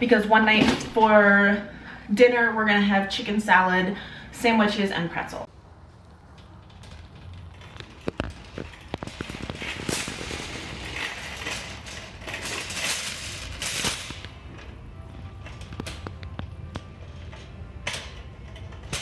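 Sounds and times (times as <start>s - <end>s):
wire shopping cart rattling: 5.8s - 19.0s.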